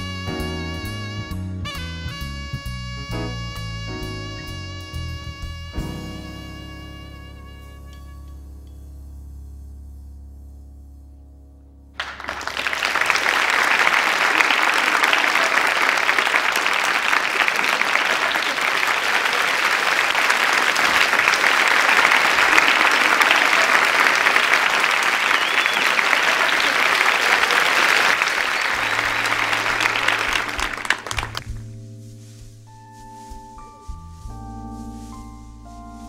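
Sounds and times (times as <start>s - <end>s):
held instrument notes: 0.1s - 9.0s
audience applause: 12.0s - 31.6s.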